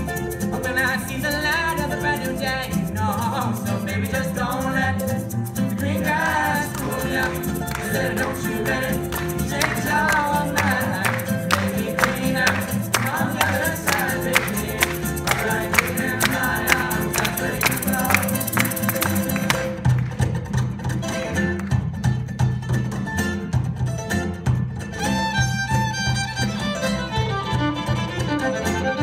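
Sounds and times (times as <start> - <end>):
acoustic guitar strumming: 0.0 - 29.0
upright bass: 0.0 - 29.0.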